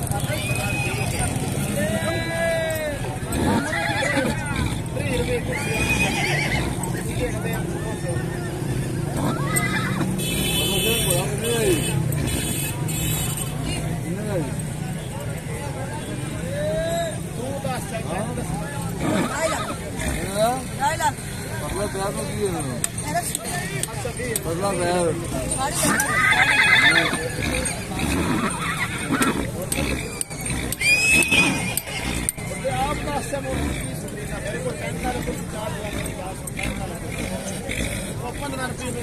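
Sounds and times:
market crowd chatter: 0:00.0 - 0:39.0
horse whinnying: 0:03.3 - 0:04.8, 0:05.4 - 0:07.0, 0:09.2 - 0:10.1, 0:18.9 - 0:19.8, 0:25.7 - 0:32.6.

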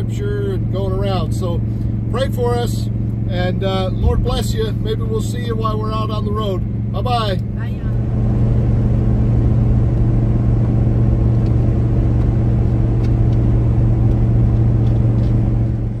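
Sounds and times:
road and tyre noise: 0:00.0 - 0:16.0
van engine hum: 0:00.0 - 0:16.0.

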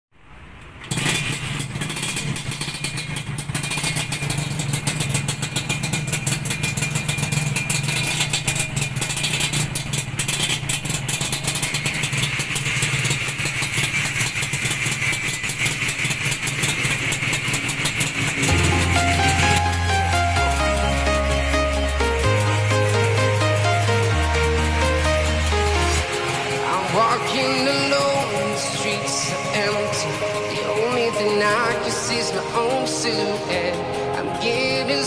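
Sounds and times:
motorcycle kick-started and idling: 0:00.3 - 0:35.0.

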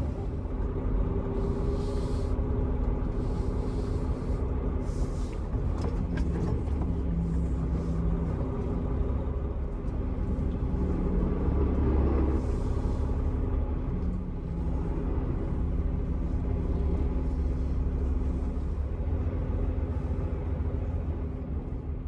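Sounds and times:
truck diesel engine rumbling: 0:00.0 - 0:22.0.

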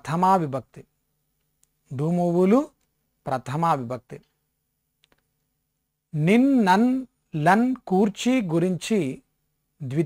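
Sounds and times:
computer mouse clicks: 0:05.0 - 0:05.3.

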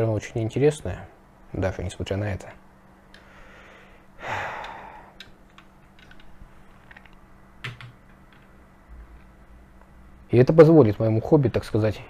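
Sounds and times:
man exhaling: 0:03.2 - 0:05.2.

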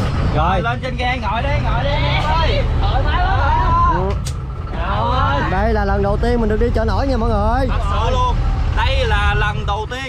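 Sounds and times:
boat engine rumbling: 0:00.0 - 0:10.0
people talking: 0:00.3 - 0:10.0.

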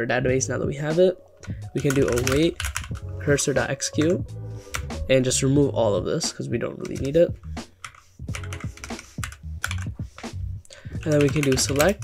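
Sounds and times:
computer keyboard typing: 0:01.7 - 0:03.1, 0:06.8 - 0:07.2, 0:07.8 - 0:10.0, 0:11.0 - 0:12.0.

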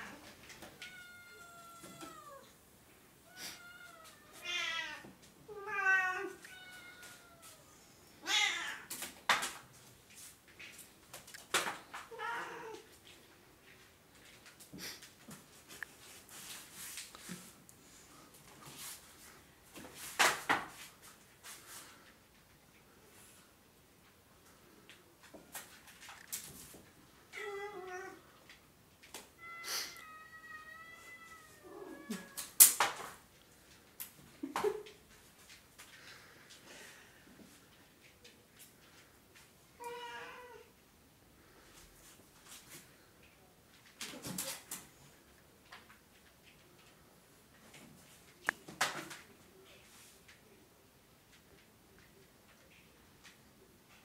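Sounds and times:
cat meowing: 0:00.8 - 0:02.6, 0:03.2 - 0:08.9, 0:29.4 - 0:32.5.

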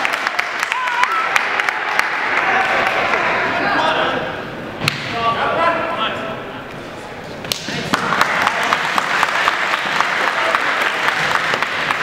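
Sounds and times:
spectators talking: 0:00.8 - 0:12.0.

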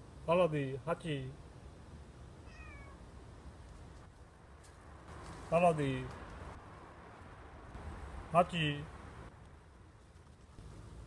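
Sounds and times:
kitten meowing: 0:02.4 - 0:03.0.

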